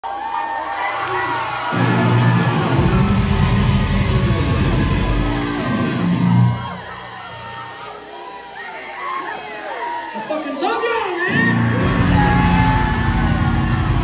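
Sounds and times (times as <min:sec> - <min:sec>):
crowd cheering and whooping: 0:00.0 - 0:14.0
metal band playing: 0:01.7 - 0:07.6, 0:11.3 - 0:14.0.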